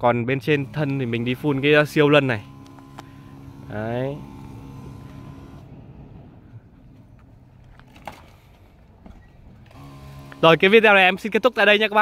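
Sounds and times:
sprayer pump motor hum: 0:00.3 - 0:07.4, 0:08.3 - 0:12.0.

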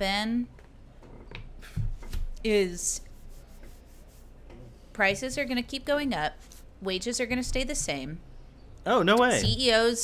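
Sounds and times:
faint rubbing noise: 0:01.6 - 0:05.6.

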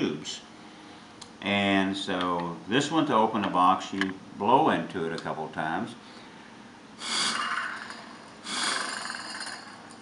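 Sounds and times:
breath blown into tube: 0:07.0 - 0:09.8.

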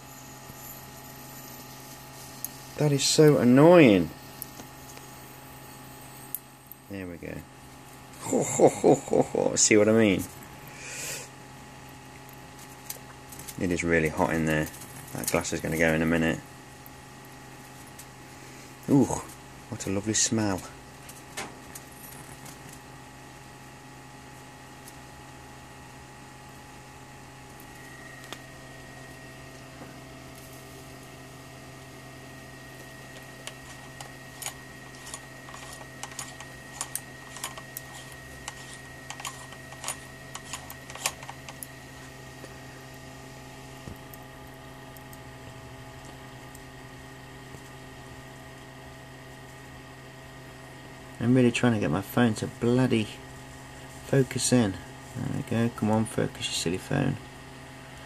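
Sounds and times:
thin high whine: 0:00.0 - 0:22.8, 0:23.4 - 0:45.9
high-voltage arc crackling: 0:00.0 - 0:58.0
low electrical hum: 0:00.0 - 0:58.0.

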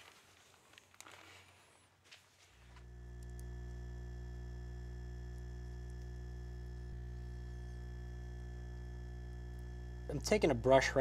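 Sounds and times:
dental vibrator humming: 0:02.8 - 0:11.0.

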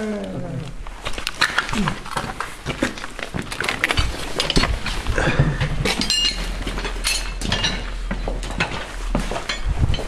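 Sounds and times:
knocks and clicks of handled gear: 0:00.9 - 0:10.0.

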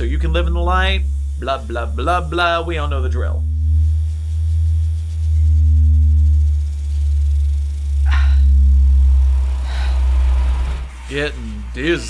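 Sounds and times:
deep low drone: 0:00.0 - 0:12.0
faint steady tone: 0:00.0 - 0:12.0.

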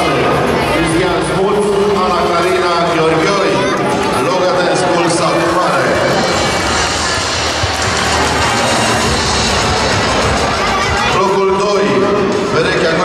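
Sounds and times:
music playing: 0:00.0 - 0:13.0
audience applause: 0:02.3 - 0:11.6.

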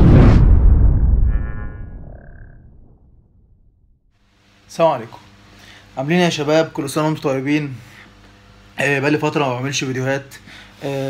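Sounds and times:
deep boom: 0:00.0 - 0:04.1.

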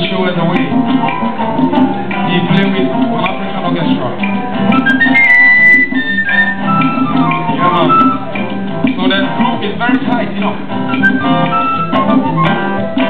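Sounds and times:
acoustic guitars: 0:00.0 - 0:13.0
conga drums: 0:00.0 - 0:13.0
wind instrument gliding notes: 0:04.7 - 0:08.6, 0:10.8 - 0:13.0.

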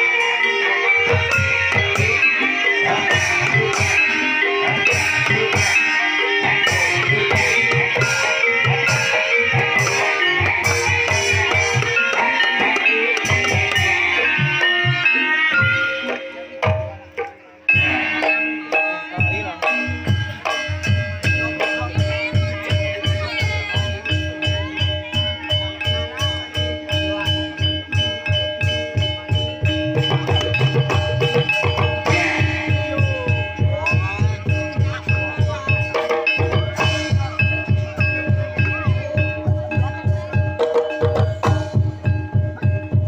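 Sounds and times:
ringing pitched melodic notes: 0:00.0 - 0:43.0
low drum beat: 0:15.6 - 0:43.0.

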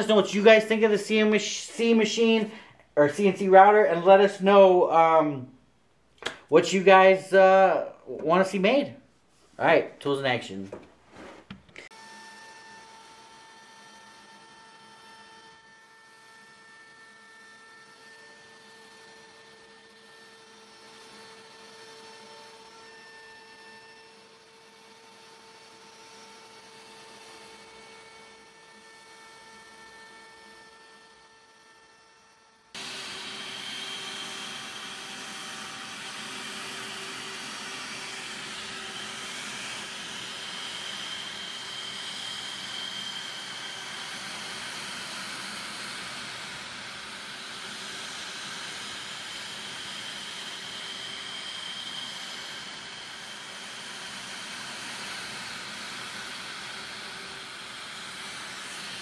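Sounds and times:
router whining carving wood: 0:11.8 - 0:59.0.

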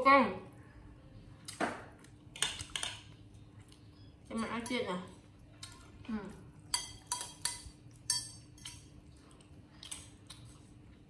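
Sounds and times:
metal spoon clinking on ceramic: 0:06.7 - 0:08.9.

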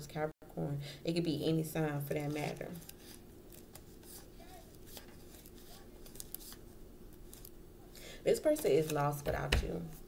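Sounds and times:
faint steady hum: 0:00.0 - 0:10.0
cards being handled: 0:02.3 - 0:07.6.

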